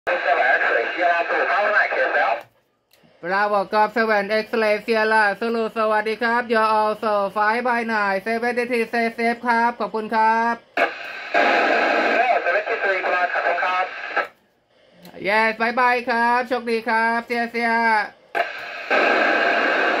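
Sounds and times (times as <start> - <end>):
voice over radio: 0.1 - 2.5, 10.3 - 14.3.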